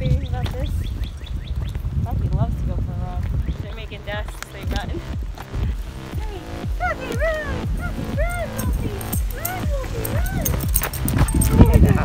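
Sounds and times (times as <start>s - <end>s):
dog yipping: 6.9s - 11.8s.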